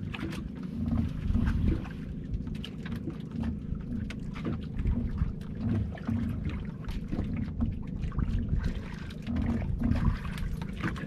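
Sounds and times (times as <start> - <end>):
water splashing against boat hull: 0.0 - 11.0
wind buffeting microphone: 0.7 - 2.6, 4.7 - 11.0.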